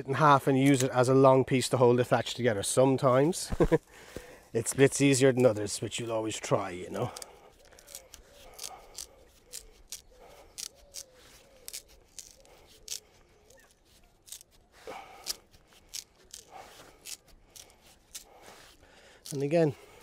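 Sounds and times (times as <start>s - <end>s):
wood cracking and snapping: 7.0s - 18.4s.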